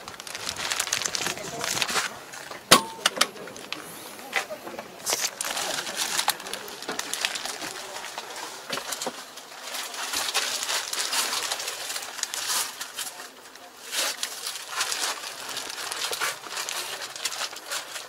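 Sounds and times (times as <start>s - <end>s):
clicks and knocks of handling: 1.8s - 5.4s.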